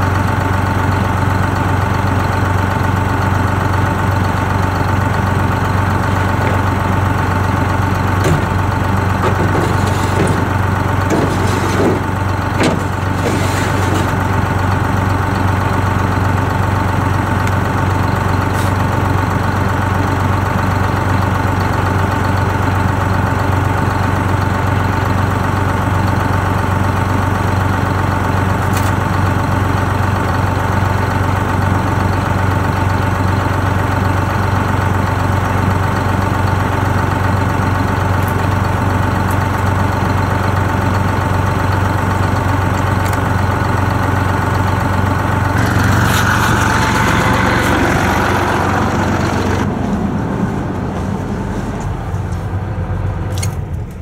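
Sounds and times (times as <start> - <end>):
bus engine idling: 0.0 - 54.0
rushing noise: 45.6 - 52.4.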